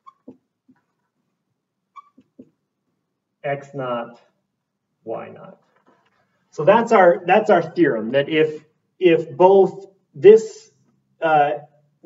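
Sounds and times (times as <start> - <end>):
marker squeaking on whiteboard: 0.0 - 2.7, 5.6 - 6.5.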